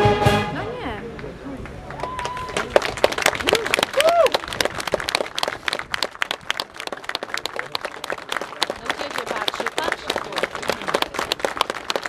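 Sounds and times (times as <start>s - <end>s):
audience applauding: 1.6s - 12.0s.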